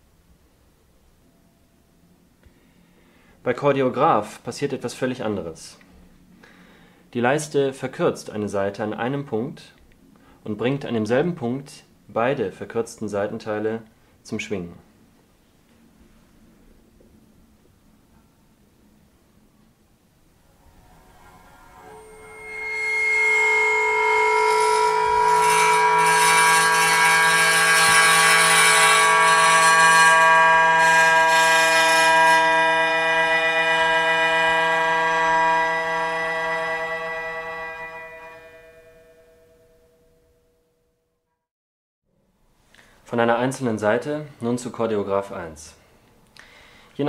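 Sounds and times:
sustained string chord: 20.0s - 40.4s.

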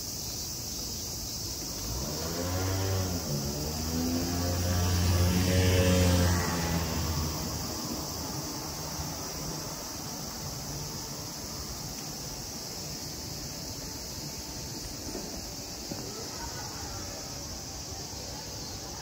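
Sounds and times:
vehicle engine passing by: 1.7s - 11.2s.

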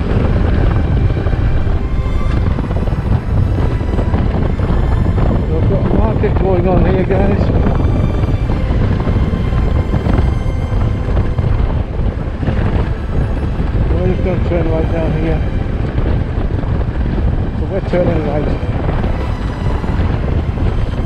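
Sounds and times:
wind on microphone: 0.0s - 21.0s
muffled voice: 5.4s - 7.8s, 13.9s - 15.4s, 17.6s - 18.7s.

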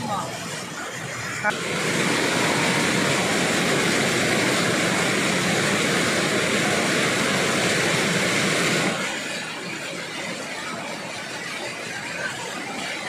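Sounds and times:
waterfall rushing over rock: 0.0s - 13.0s.

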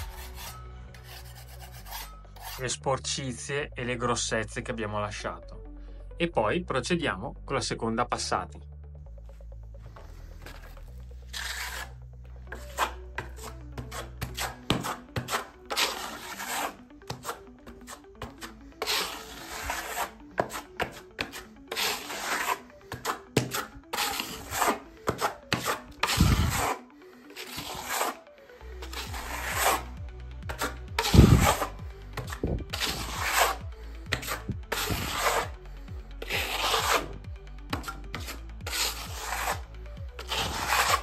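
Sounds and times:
metal trowel scraping on wall: 0.0s - 2.8s, 10.4s - 28.2s, 28.8s - 35.6s, 36.2s - 41.0s.

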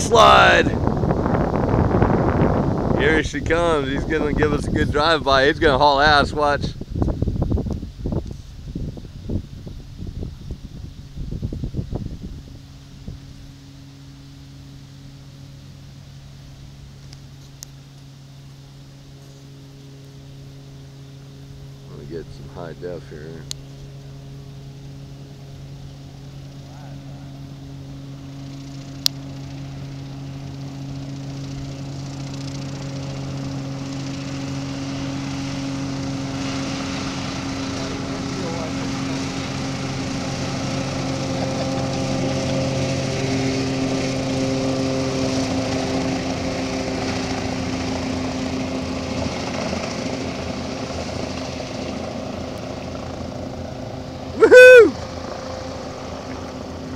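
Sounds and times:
hovercraft engine and propeller drone: 0.0s - 56.9s
loud call rising and falling: 54.4s - 55.0s.

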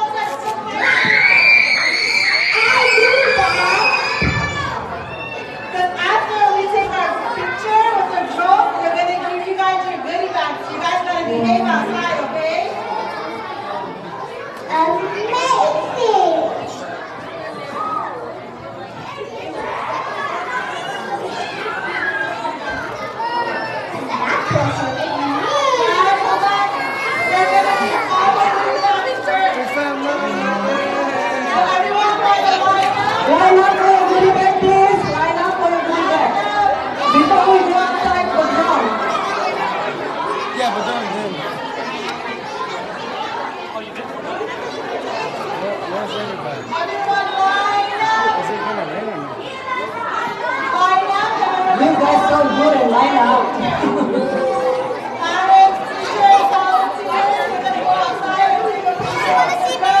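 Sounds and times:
children chattering and shouting: 0.0s - 60.0s.

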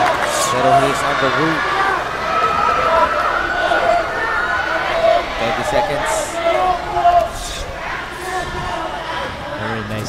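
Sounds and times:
crowd din: 0.0s - 10.0s
man's voice: 5.4s - 7.7s.

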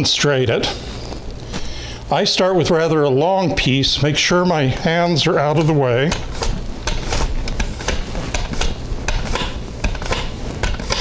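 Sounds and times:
mandoline slicer scraping strokes: 5.5s - 11.0s.

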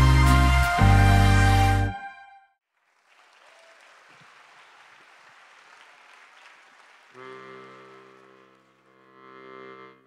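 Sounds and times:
faint audience applause: 2.7s - 9.5s.

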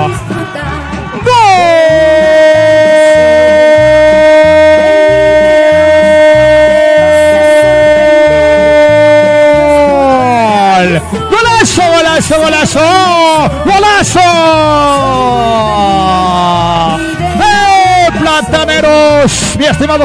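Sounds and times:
background music with steady beat: 0.0s - 20.0s
commentator's long goal cry: 1.2s - 11.6s.

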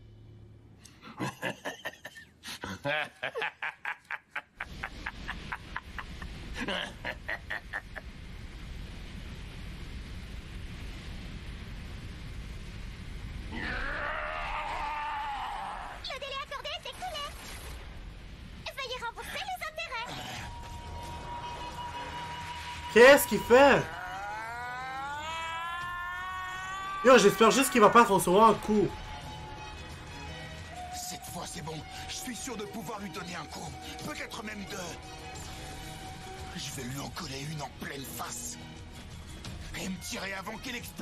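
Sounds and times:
person laughing in pulses: 1.1s - 8.0s.

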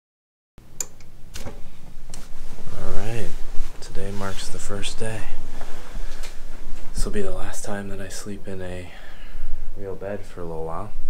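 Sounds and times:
low steady hum: 0.6s - 11.0s.

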